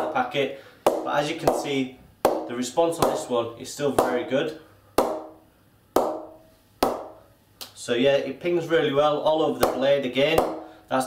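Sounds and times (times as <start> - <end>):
ball pinging on cricket bat: 5.0 - 5.4, 6.0 - 7.2.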